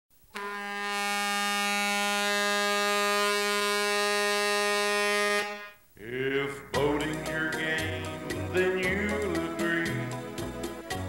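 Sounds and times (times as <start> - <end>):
long steady horn blast: 0.3 - 5.8.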